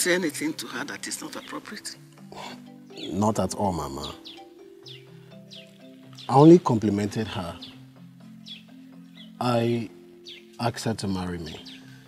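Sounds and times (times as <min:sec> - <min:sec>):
soft background music: 0:00.0 - 0:12.0
bird chirping: 0:00.1 - 0:12.0.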